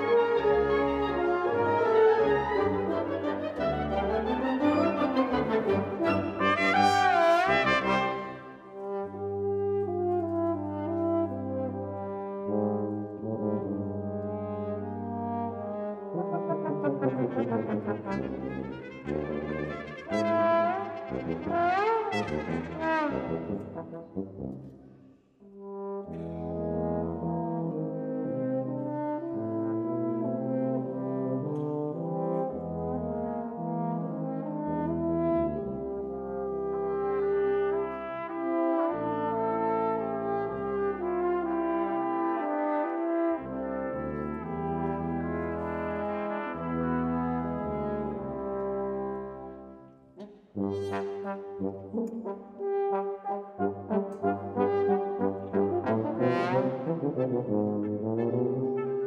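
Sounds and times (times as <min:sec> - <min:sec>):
brass and wind band playing: 0:00.0 - 0:24.8, 0:25.4 - 0:59.0.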